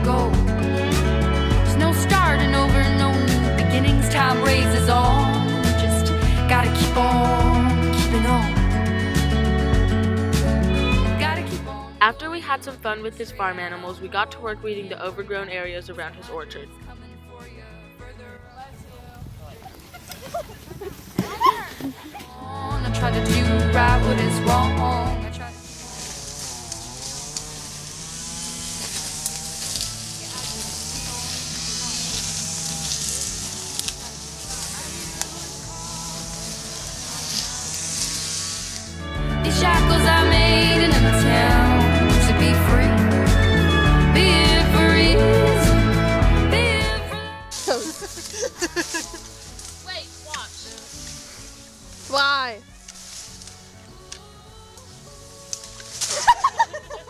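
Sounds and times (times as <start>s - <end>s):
background music: 0.0s - 20.0s, 21.4s - 57.0s
people's voices: 10.8s - 43.3s, 44.2s - 57.0s.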